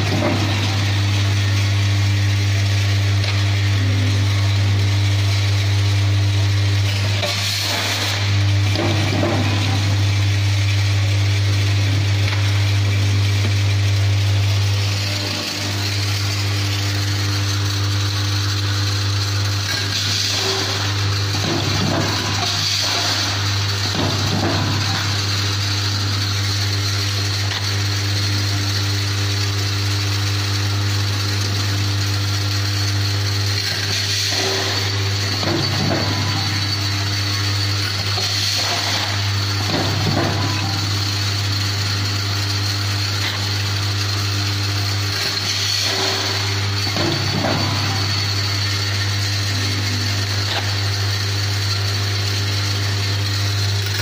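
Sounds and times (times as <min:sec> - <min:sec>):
machine electrical hum: 0:00.0 - 0:54.0.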